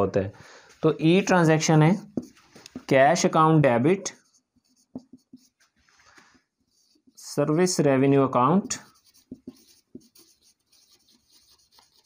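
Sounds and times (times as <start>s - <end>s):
marker writing on whiteboard: 1.7s - 3.3s, 3.9s - 7.7s, 8.5s - 12.0s.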